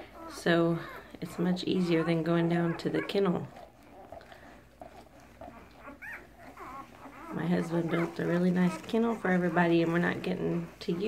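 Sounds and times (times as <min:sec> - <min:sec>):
puppies squeaking: 0:00.0 - 0:11.0.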